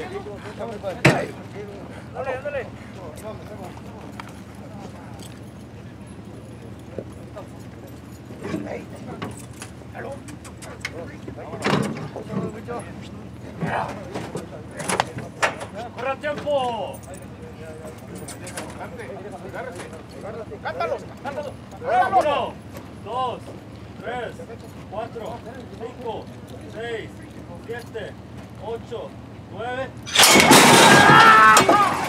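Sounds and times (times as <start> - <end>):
faint indistinct voices: 0.0 - 30.1.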